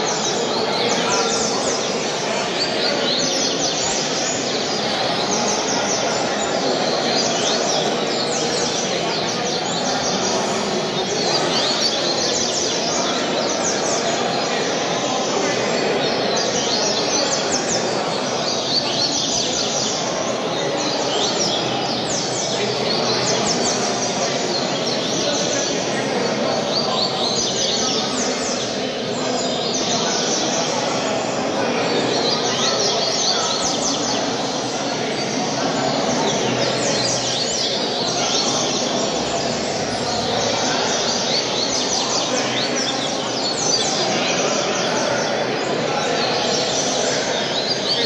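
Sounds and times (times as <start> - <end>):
bird singing: 0.0 - 48.0
steady background din: 0.0 - 48.0.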